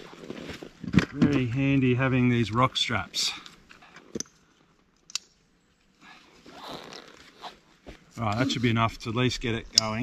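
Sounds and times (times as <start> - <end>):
strap buckle clicks: 5.0 - 5.4.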